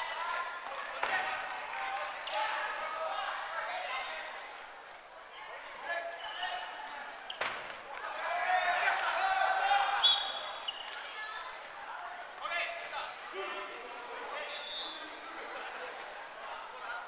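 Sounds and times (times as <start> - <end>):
players shouting in a gymnasium: 0.0 - 17.0
sneaker squeaks on wooden court: 6.0 - 7.8, 15.3 - 15.7.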